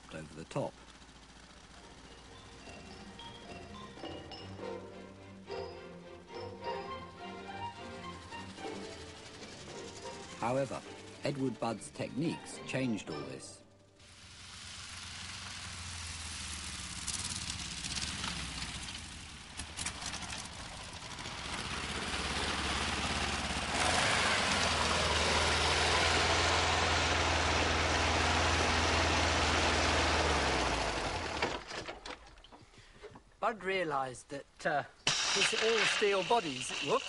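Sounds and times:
vehicle engine rumbling: 0.0s - 12.6s, 13.8s - 33.4s.

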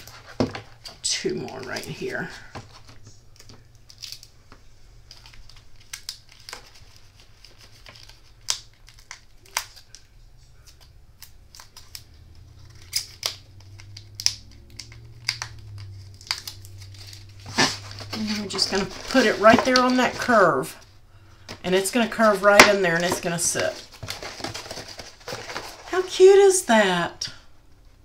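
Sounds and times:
cardstock rustling: 5.1s - 10.0s, 14.8s - 20.8s, 21.4s - 26.4s.

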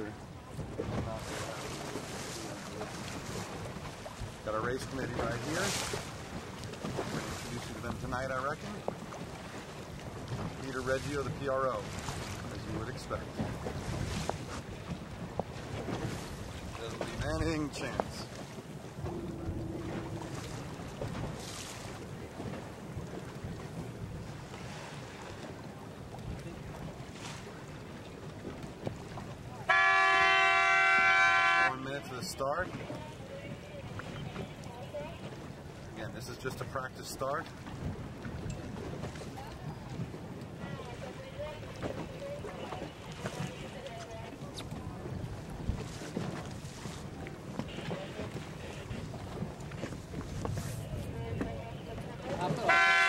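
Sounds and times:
boat and water rumble: 0.0s - 53.0s
wind buffeting microphone: 8.7s - 27.6s, 37.6s - 53.0s.

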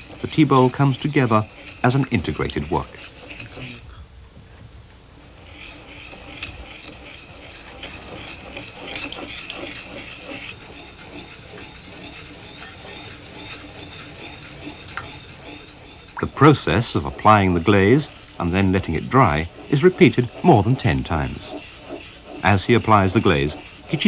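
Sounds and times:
brush rubbing on ceramic bowl: 0.0s - 3.9s, 5.2s - 24.0s.

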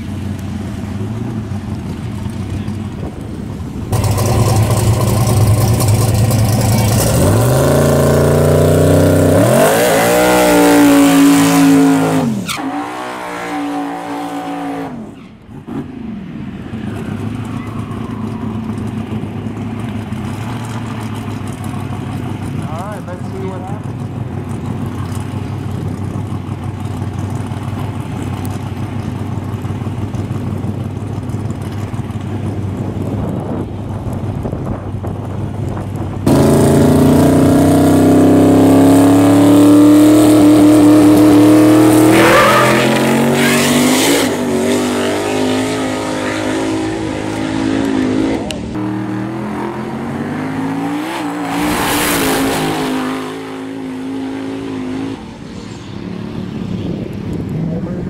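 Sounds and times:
drag car engine revving: 0.0s - 58.0s.

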